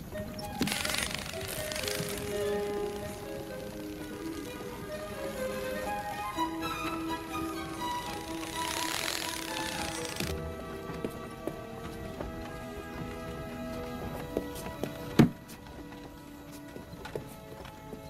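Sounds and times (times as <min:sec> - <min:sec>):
soft film score: 0:00.0 - 0:18.0.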